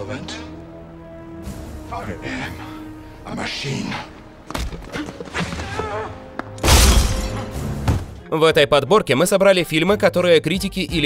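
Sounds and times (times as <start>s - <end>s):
film score: 0.0s - 11.0s.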